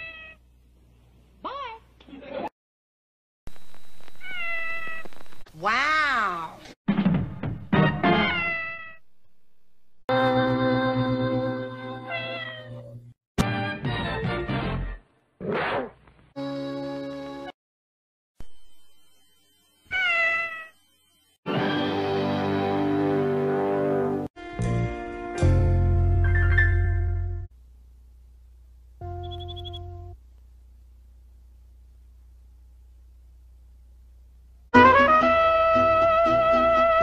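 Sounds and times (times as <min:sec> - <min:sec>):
kitten meowing: 0:04.2 - 0:05.1.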